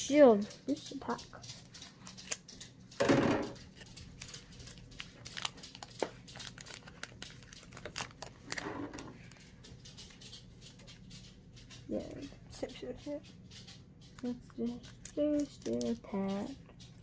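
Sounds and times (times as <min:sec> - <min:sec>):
scissors snipping foil pack: 0:00.7 - 0:11.0, 0:14.2 - 0:17.0
foil wrapper crinkling: 0:00.7 - 0:11.3, 0:14.2 - 0:17.0.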